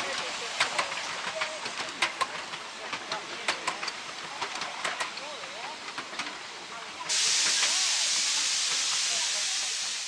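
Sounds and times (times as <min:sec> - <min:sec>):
steam locomotive hissing: 0:00.0 - 0:10.0.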